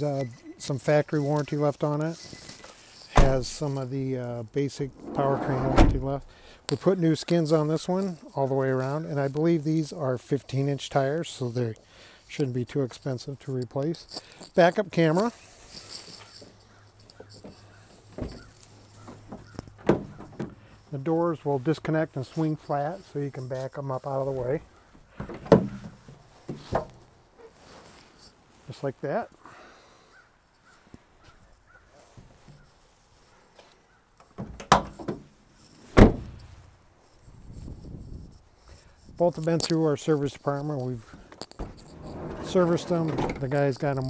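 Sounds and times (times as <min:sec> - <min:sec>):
van door clunk: 0:03.2 - 0:03.6, 0:05.0 - 0:06.4, 0:34.4 - 0:35.3, 0:36.0 - 0:36.7
door clicks and rattles: 0:05.0 - 0:06.3.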